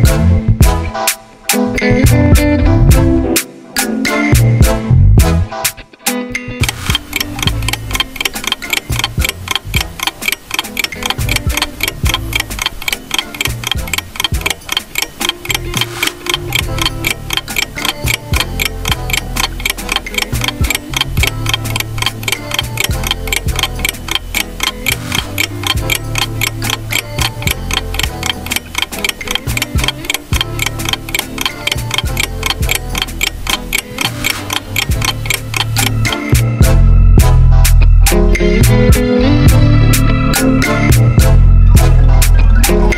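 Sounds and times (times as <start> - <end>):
background music with bass: 0.0 - 42.9
fast clock ticking: 6.6 - 36.7.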